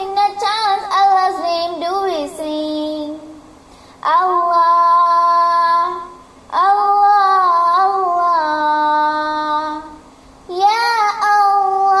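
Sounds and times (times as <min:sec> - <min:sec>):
girl singing unaccompanied: 0:00.0 - 0:12.0.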